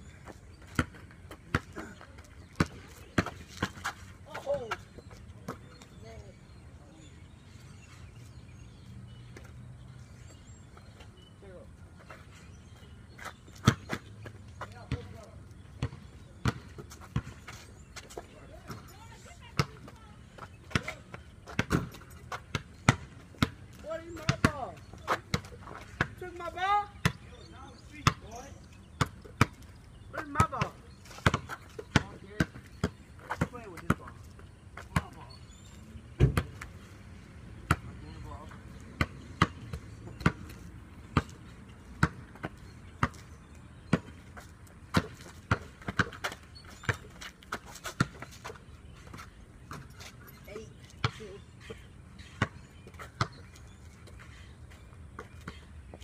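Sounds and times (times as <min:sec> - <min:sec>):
basketball bouncing on concrete: 0:00.2 - 0:04.8, 0:13.5 - 0:17.4, 0:18.0 - 0:27.3, 0:28.0 - 0:34.2, 0:34.8 - 0:35.2, 0:36.2 - 0:36.7, 0:37.6 - 0:50.0, 0:50.8 - 0:53.6.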